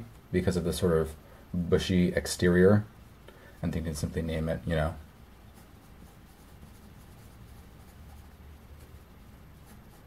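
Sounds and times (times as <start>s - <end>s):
pencil scratching on paper: 5.5s - 10.0s.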